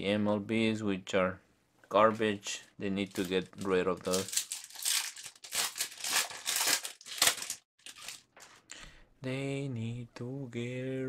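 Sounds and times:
foil wrapper crinkling: 3.1 - 8.6.

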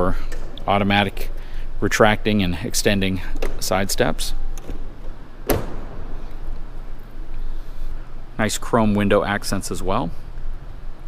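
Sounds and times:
pickup truck door shutting: 4.5 - 6.5.

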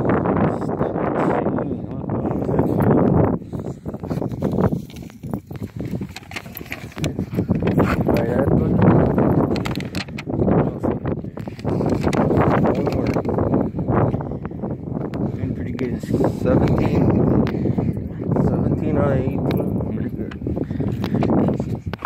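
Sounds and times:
phone handling knocks and rustles: 4.8 - 10.3, 11.4 - 13.3.

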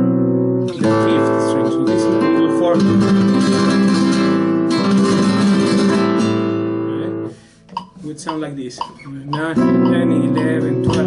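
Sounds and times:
flamenco guitar strumming: 0.0 - 11.0
light taps: 7.7 - 11.0.

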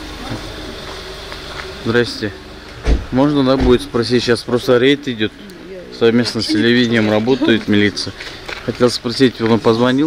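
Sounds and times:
buzzing hum: 0.0 - 9.2
outdoor background noise: 0.0 - 10.0.

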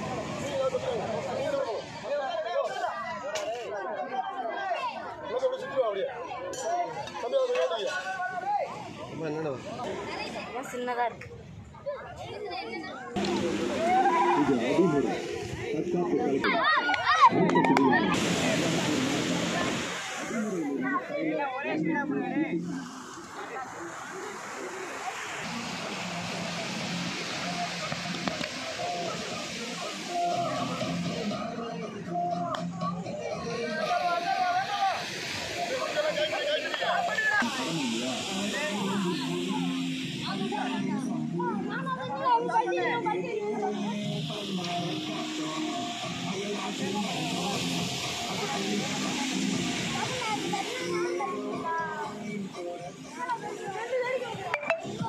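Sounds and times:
children chattering and calling out: 0.0 - 55.0
children shouting: 12.7 - 14.9, 16.4 - 18.2
steady hiss: 13.2 - 16.4, 18.1 - 55.0
background music: 13.2 - 23.0, 25.5 - 55.0.

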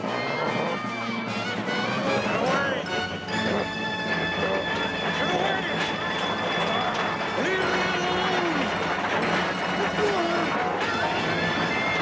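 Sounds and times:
dramatic music: 0.0 - 12.0
ferris wheel machinery grinding: 0.0 - 12.0.

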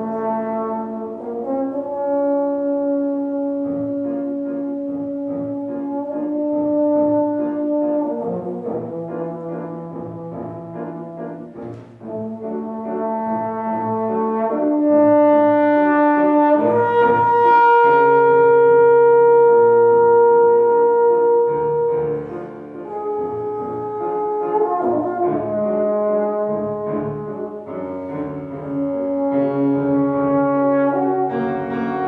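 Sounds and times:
piano accompaniment: 0.0 - 32.0
trombone melody: 0.0 - 32.0.

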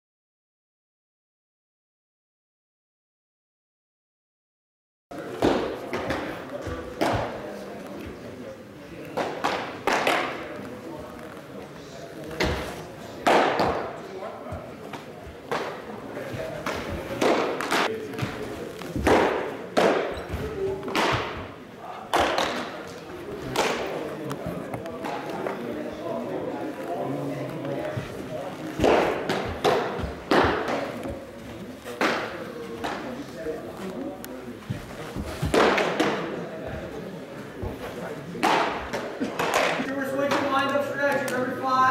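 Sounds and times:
baseballs thudding in hall: 5.1 - 41.9.

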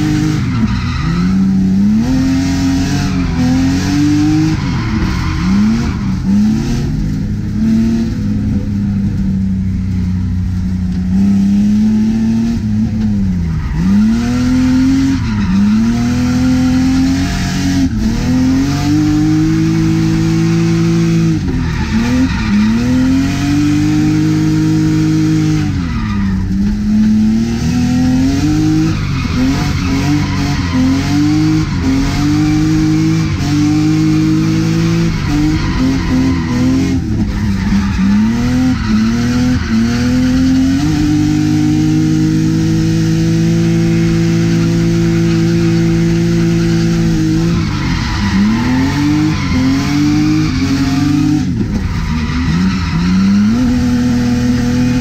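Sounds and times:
tyres squealing and skidding: 0.0 - 6.6, 13.2 - 42.1, 43.5 - 55.0
car engine revving: 0.0 - 55.0.

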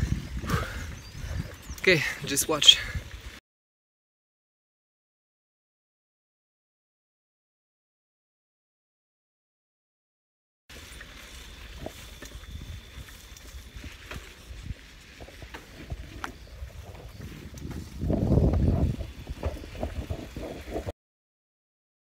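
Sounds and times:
loud wind gust: 0.0 - 2.2, 17.1 - 20.9
wind rumble on microphone: 0.0 - 3.4, 10.9 - 20.9
faint steady high whine: 10.7 - 20.5.

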